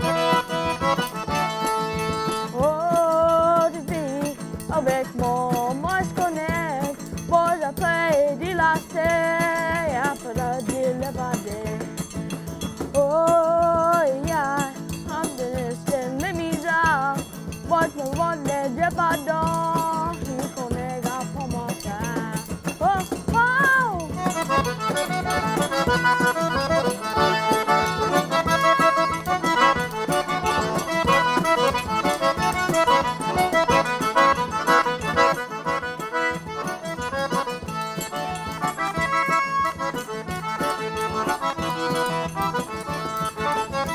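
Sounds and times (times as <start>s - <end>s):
person singing: 0.0s - 12.0s, 12.9s - 43.9s
accordion band music: 0.0s - 43.9s.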